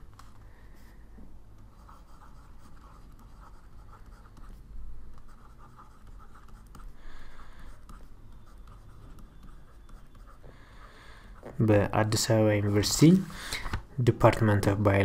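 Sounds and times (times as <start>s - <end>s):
stylus scratching handwriting: 1.8s - 7.0s, 7.7s - 10.5s.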